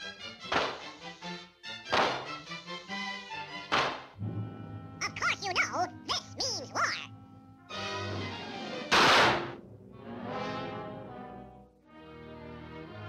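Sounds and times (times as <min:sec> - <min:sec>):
cartoon orchestral music: 0:04.3 - 0:07.2.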